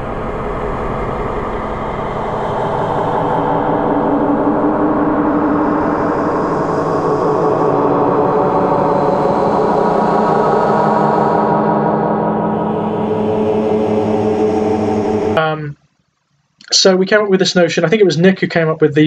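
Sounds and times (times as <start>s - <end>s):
dark ambient drone: 0.0s - 15.8s.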